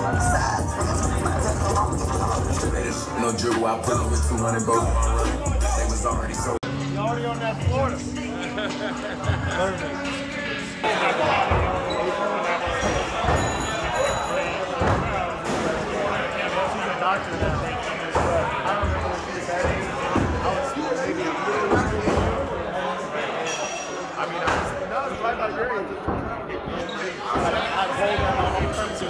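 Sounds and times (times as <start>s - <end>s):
background music: 0.0s - 21.0s
people talking: 0.0s - 29.0s.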